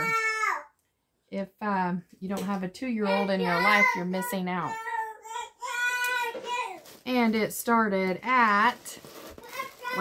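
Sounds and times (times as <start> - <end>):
toddler singing: 3.1 - 6.8, 9.4 - 10.0.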